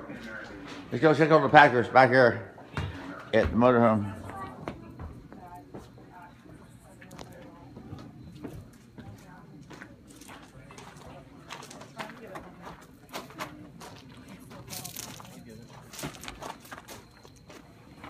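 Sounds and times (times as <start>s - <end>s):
low indistinct voices: 0.0s - 18.0s.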